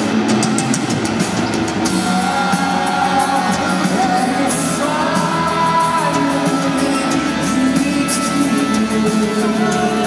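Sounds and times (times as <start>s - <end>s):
drum kit: 0.0s - 10.0s
electric guitar: 0.0s - 10.0s.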